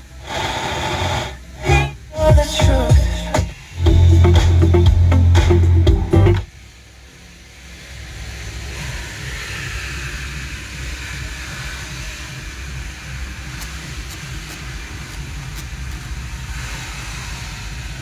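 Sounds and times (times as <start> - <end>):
blower fan rushing air: 0.0 - 18.0
low rumble: 1.4 - 18.0.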